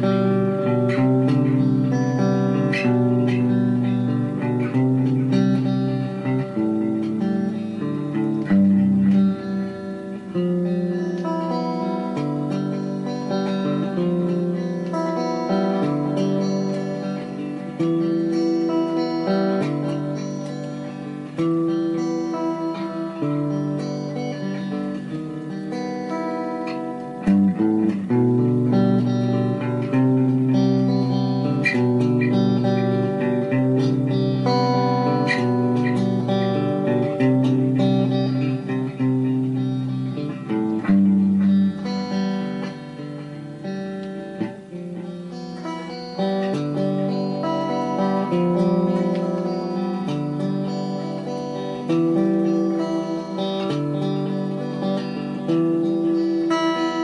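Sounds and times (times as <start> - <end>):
slow guitar chords: 0.0 - 57.0.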